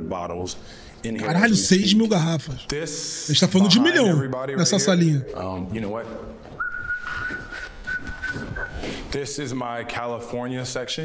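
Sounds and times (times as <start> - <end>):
man whistling a long note: 6.6 - 8.9.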